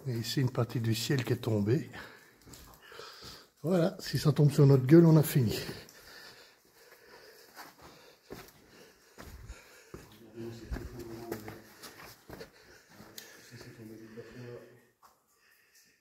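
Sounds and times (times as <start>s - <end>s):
footsteps and scrapes on loose stone: 7.6s - 13.1s.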